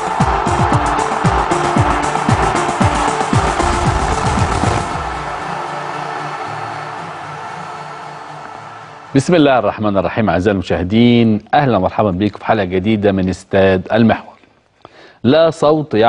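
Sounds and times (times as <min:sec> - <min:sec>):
held synth chord: 0:00.2 - 0:07.6
electronic drum hits: 0:03.3 - 0:05.6
falling-pitch booms: 0:03.4 - 0:05.5.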